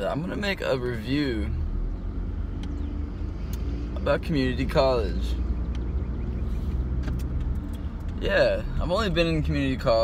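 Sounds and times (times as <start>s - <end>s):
car engine running: 0.0s - 10.0s.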